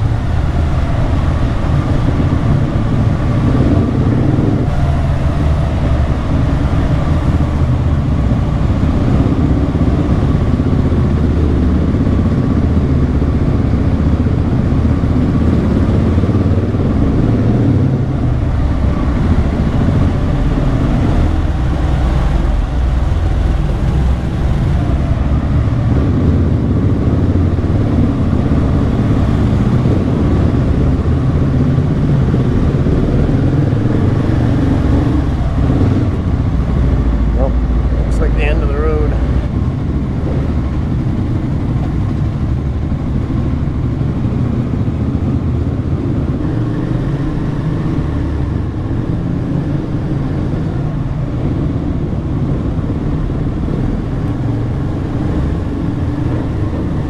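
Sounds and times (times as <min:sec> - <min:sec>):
motorcycle engines running: 0:00.0 - 0:57.0.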